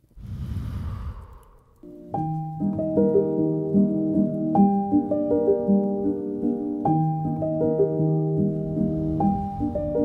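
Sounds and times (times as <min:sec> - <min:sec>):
breath blowing on microphone: 0:00.0 - 0:01.8, 0:08.5 - 0:10.0
piano-like music: 0:01.8 - 0:10.0.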